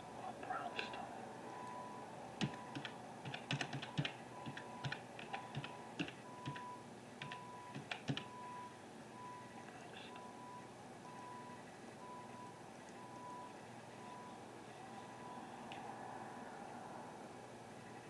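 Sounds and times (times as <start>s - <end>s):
faint steady background noise: 0.0s - 18.0s
sharp clicks and taps: 2.4s - 8.3s
faint high beep: 8.3s - 15.6s.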